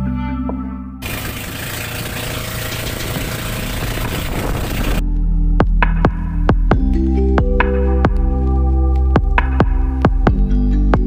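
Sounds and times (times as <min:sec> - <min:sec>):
boat engine running: 0:01.0 - 0:05.0
wind and water noise: 0:01.0 - 0:05.0
music with low beat and plucked notes: 0:05.0 - 0:11.0.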